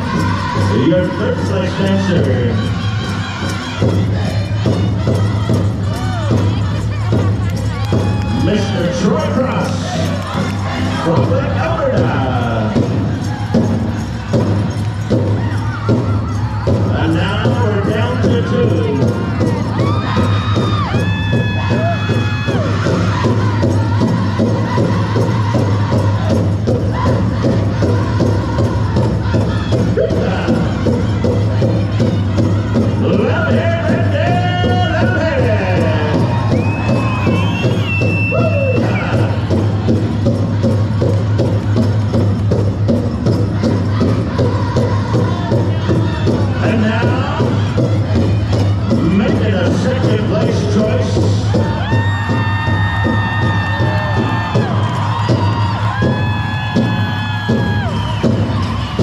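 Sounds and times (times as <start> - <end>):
big drum beating: 0.0 - 59.0
crowd in a large hall: 0.0 - 59.0
high held calls: 35.5 - 39.4.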